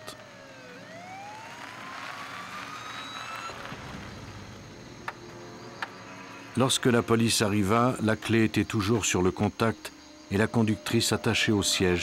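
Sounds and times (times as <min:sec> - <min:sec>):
police siren wailing: 0:00.0 - 0:03.6.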